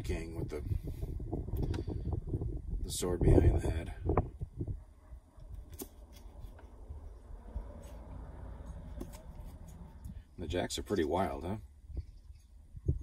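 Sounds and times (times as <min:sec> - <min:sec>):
wind noise on microphone: 0:00.0 - 0:10.4, 0:11.8 - 0:13.0
playing cards shuffling: 0:05.6 - 0:06.8, 0:07.7 - 0:10.0.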